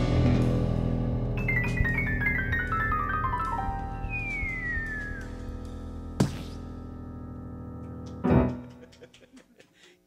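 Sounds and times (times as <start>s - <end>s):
piano chord ringing: 0.0s - 8.8s.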